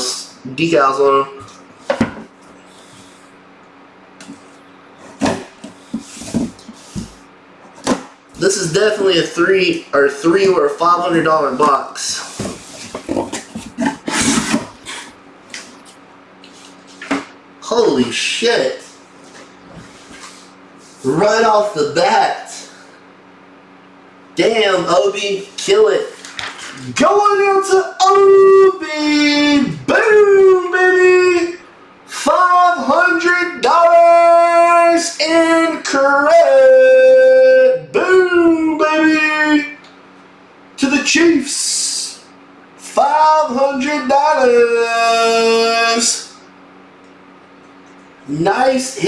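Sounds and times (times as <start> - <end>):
cardboard scraping and rustling: 12.2 - 15.9.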